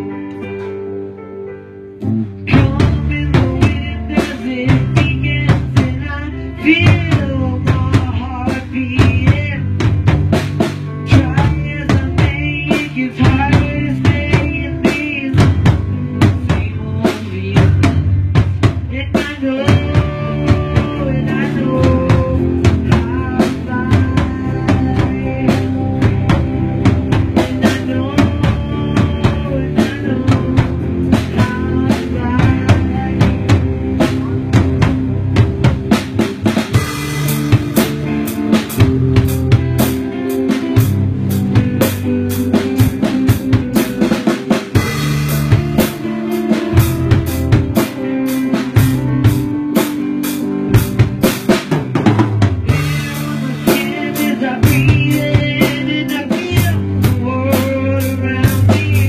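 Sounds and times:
instrumental band music: 0.0s - 59.0s.

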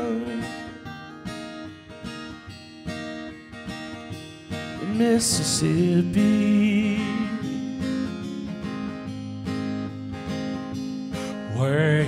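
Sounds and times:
acoustic guitars strumming: 0.0s - 12.0s.

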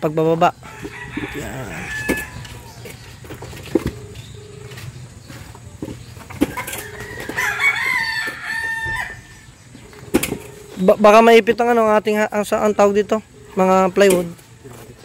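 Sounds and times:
rooster crowing: 0.5s - 3.0s, 6.4s - 9.5s.

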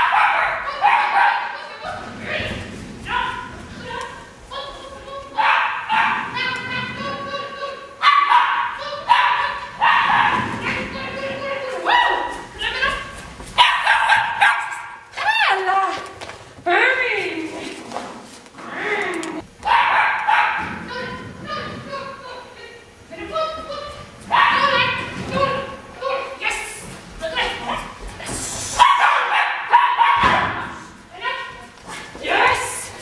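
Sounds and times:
small dog barking and yipping: 28.8s - 30.3s.

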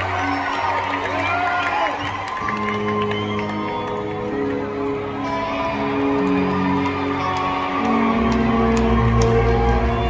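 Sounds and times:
bass guitar: 2.4s - 10.0s
held electric guitar notes: 2.5s - 10.0s.

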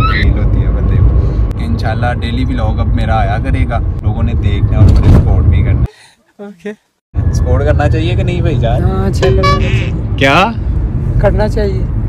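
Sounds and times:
men talking: 7.4s - 11.9s.

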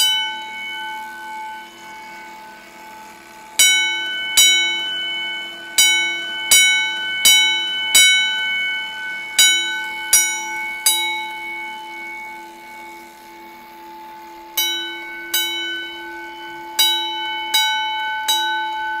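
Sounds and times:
fire alarm bell strokes: 0.0s - 19.0s.

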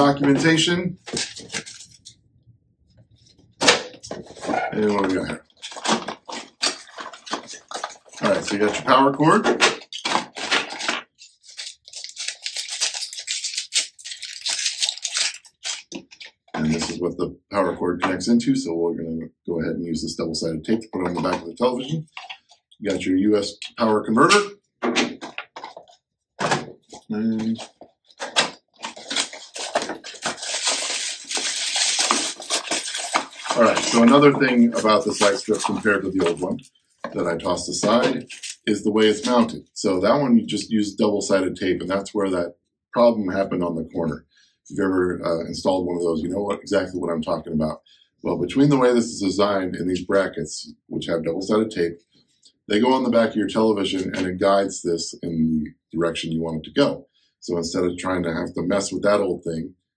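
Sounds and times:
packaging crinkling: 1.1s - 2.0s, 3.6s - 8.8s, 9.4s - 17.0s, 26.9s - 37.2s, 37.8s - 39.5s.

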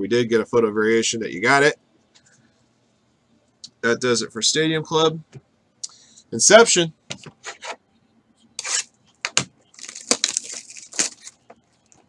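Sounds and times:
plastic crinkling: 9.7s - 12.0s
packaging being torn open: 9.8s - 11.4s.

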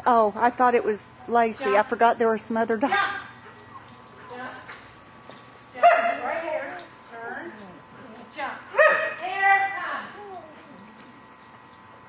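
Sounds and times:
dog whimpering and whining: 3.1s - 4.2s, 10.0s - 11.5s.

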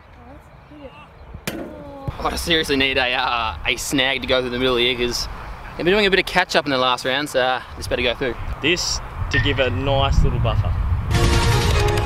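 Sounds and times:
distant voices: 0.0s - 10.9s
sharp thud: 1.4s - 2.2s.

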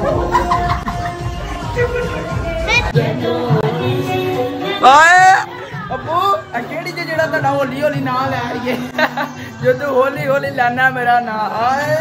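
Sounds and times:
crowd chatter: 0.0s - 9.9s.

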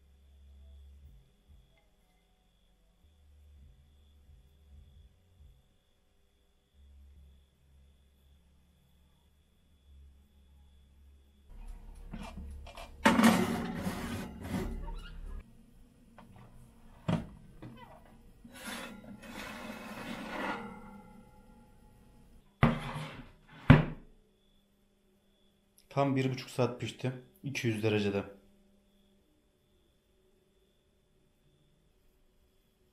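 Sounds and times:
oven door and rack clattering: 12.1s - 15.4s, 17.0s - 21.4s.

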